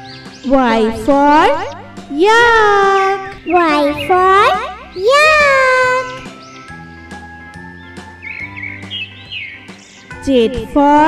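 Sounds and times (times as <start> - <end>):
bird chirps twittering: 0.0 - 10.2
background music with held notes: 0.0 - 11.0.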